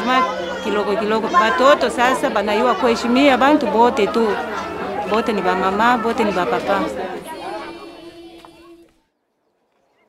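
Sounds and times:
children singing: 0.0s - 9.0s.

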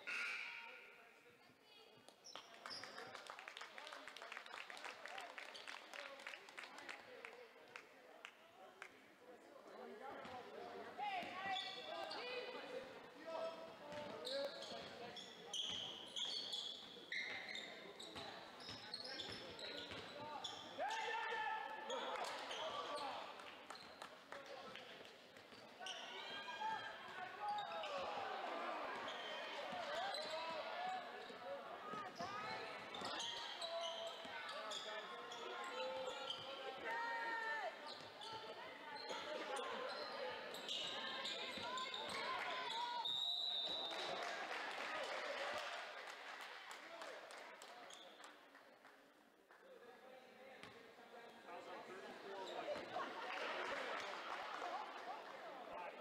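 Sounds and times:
voices in large gym: 0.0s - 56.0s
sneakers squeaking: 11.1s - 12.5s, 13.9s - 20.9s, 25.4s - 28.2s, 28.9s - 36.8s, 37.7s - 44.0s.

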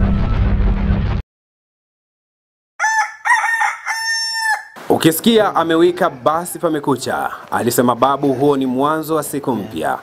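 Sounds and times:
rooster crowing: 2.8s - 4.8s.

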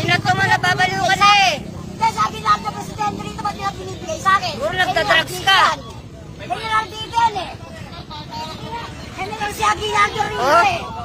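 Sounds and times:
other voices: 0.0s - 11.0s.

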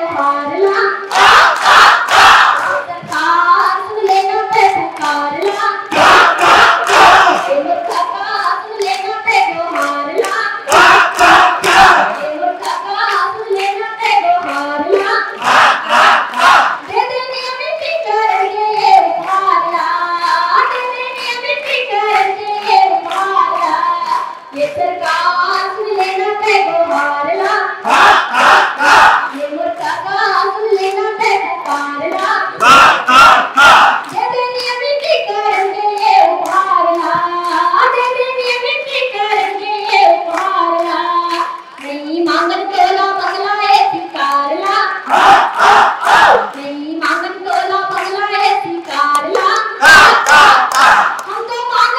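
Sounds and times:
woman singing over loudspeaker: 0.0s - 1.6s, 2.4s - 45.2s, 46.2s - 51.9s
crowd clapping along: 0.1s - 51.9s.

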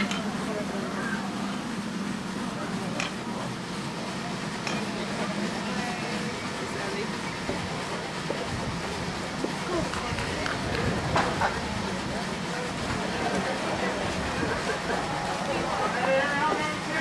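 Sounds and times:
spectators chattering: 0.0s - 17.0s.

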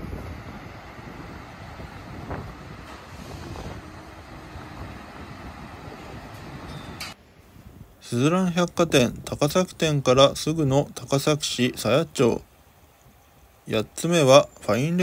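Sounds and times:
wind on microphone: 0.0s - 10.5s
traffic rumble: 0.0s - 15.0s.

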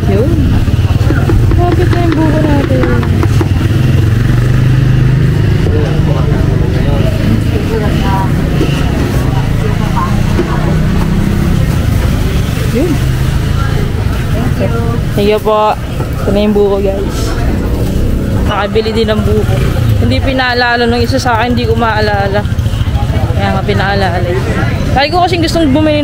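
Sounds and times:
engine running low drone: 0.0s - 25.0s
faint background voices: 5.1s - 26.0s.

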